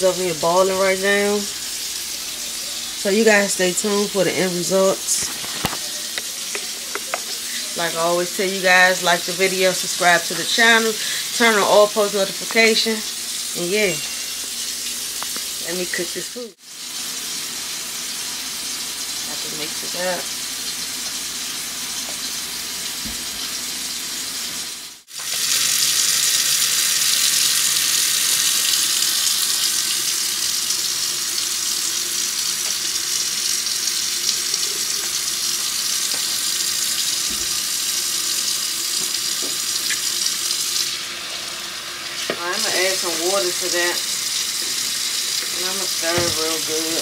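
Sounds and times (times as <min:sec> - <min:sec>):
faucet running into a metal sink: 0:42.1 - 0:47.0.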